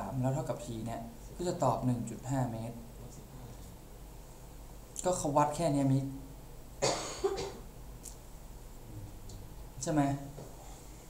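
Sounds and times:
man coughing: 6.8 - 7.6.

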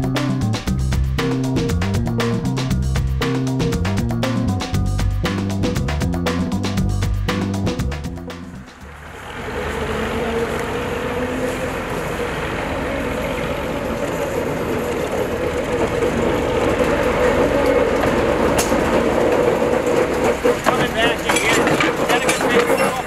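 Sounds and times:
diesel locomotive engine drone: 0.0 - 23.0
wheels clicking over rail joints: 8.2 - 23.0.

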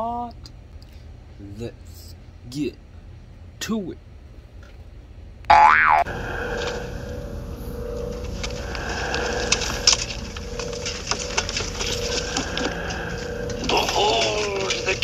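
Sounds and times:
steady hum with hiss: 0.0 - 15.0
springy boing sound effect: 5.5 - 6.1.

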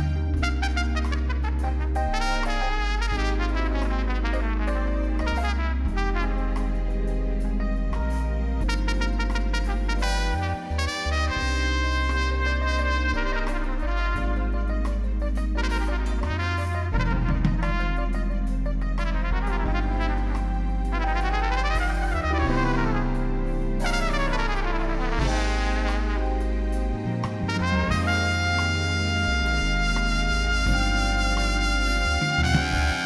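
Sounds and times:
keyboards: 0.0 - 33.0
low bass line: 0.0 - 33.0
trumpet playing held notes: 0.0 - 33.0.

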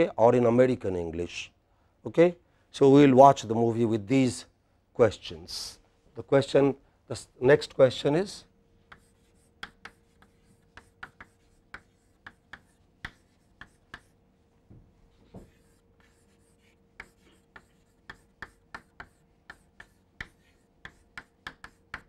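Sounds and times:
chalk tapping on chalkboard: 8.8 - 14.2, 15.2 - 22.0.

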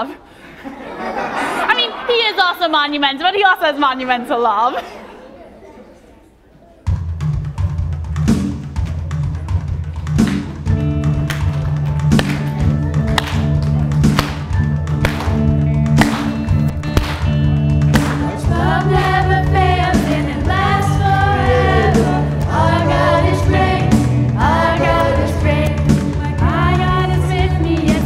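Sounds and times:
steady drum beat: 6.9 - 28.0
voices singing: 17.9 - 28.0.

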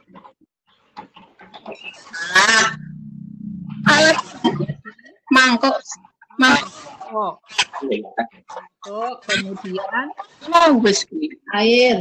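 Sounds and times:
faint halting vocal sounds: 2.3 - 5.0.

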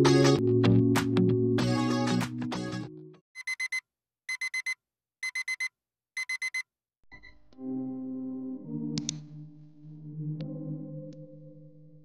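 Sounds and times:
digital alarm clock beeping: 3.4 - 7.3.

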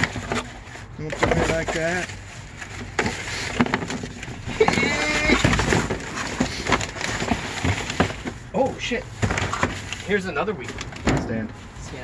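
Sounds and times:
person vocalizing: 4.5 - 5.6.

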